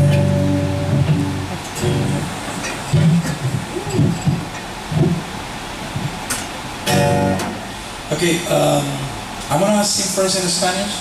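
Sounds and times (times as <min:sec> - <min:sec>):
acoustic guitar chord strummed: 0:00.0 - 0:05.2, 0:06.8 - 0:07.8
low voice murmuring: 0:02.8 - 0:04.5.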